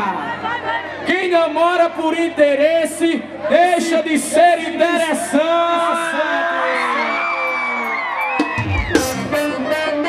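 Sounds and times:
backing music: 7.4s - 10.0s.

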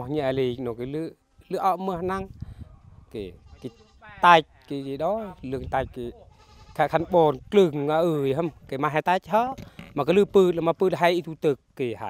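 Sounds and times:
man speaking: 0.0s - 2.3s, 3.1s - 12.0s.

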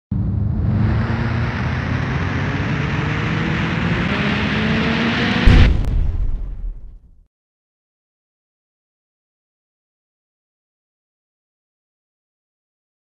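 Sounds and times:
noisy rising whoosh: 0.1s - 6.5s
booming impact hit: 4.0s - 7.1s.

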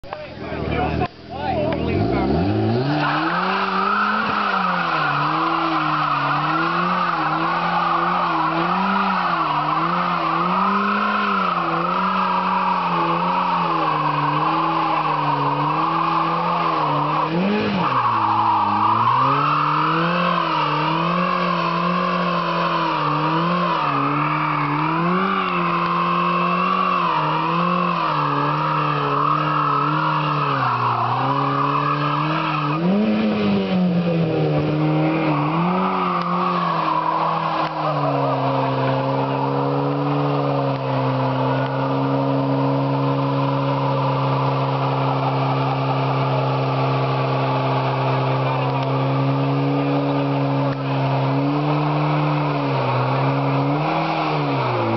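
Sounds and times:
car engine revving: 0.0s - 54.9s
tyres spinning on pavement: 0.1s - 54.9s.

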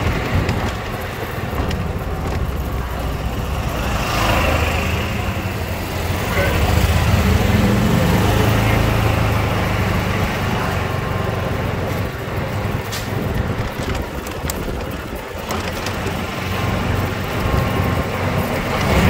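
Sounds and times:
golf cart running rumble: 0.0s - 19.0s
road noise: 0.0s - 19.0s.

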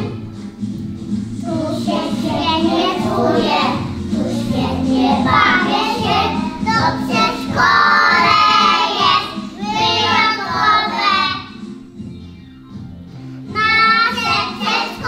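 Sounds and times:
musical accompaniment: 0.0s - 15.0s
small children singing: 1.4s - 11.6s, 13.5s - 15.0s.

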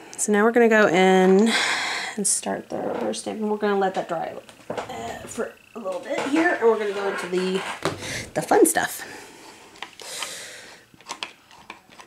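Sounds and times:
breathy exhale: 8.0s - 8.4s, 9.0s - 10.8s.

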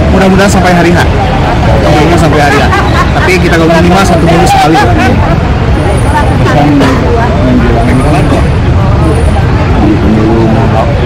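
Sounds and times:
voices talking: 0.0s - 11.0s.

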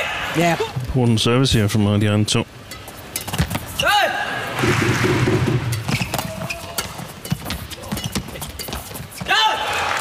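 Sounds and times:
crowd noise: 2.1s - 10.0s
rackets striking shuttlecock: 5.2s - 9.1s.

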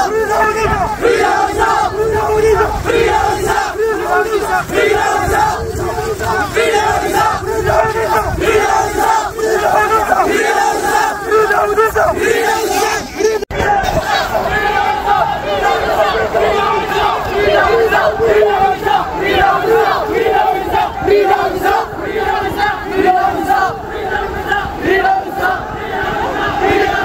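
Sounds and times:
crowd chanting in unison: 0.0s - 27.0s.

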